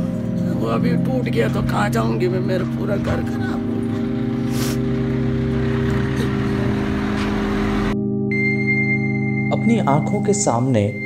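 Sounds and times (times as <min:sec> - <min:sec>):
low drone music: 0:00.0 - 0:11.0.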